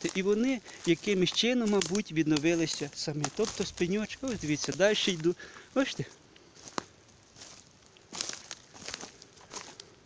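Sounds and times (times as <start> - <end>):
footsteps on dry leaves and twigs: 0.0 - 10.0.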